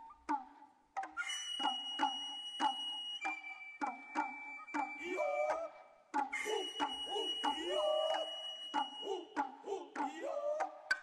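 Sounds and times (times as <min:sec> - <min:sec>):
high flute note: 0:06.4 - 0:09.2
long sliding vocal calls: 0:06.4 - 0:10.3.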